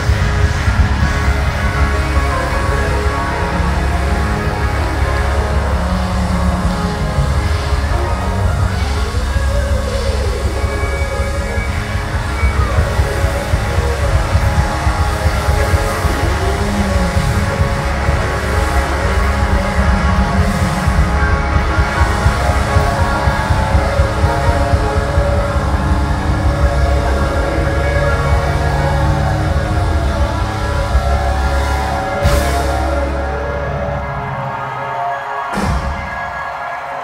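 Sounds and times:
bass guitar: 0.0 - 37.0
drums: 0.0 - 37.0
electric guitar solo: 0.0 - 37.0.

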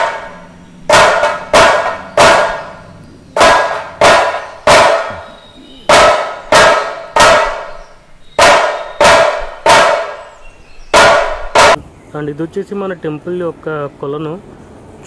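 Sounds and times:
large drum strikes: 0.0 - 5.3, 5.9 - 7.8, 8.4 - 10.3, 10.9 - 11.9.

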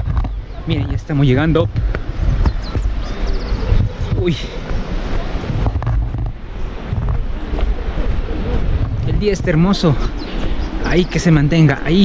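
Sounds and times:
footsteps on dirt trail: 0.0 - 12.0
wind buffeting microphone: 0.0 - 12.0.

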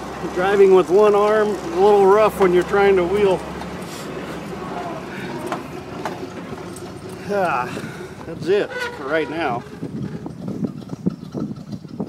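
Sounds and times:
truck engine droning: 0.0 - 12.0.

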